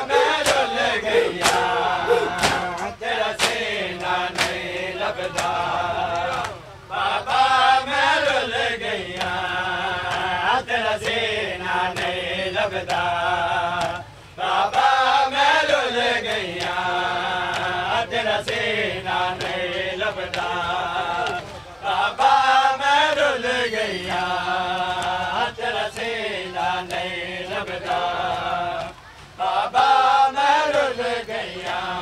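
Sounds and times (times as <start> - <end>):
men chanting: 0.0 - 32.0.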